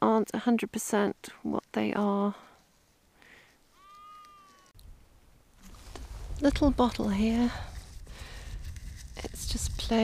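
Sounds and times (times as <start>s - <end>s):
faint mewing animal call: 3.7s - 4.8s.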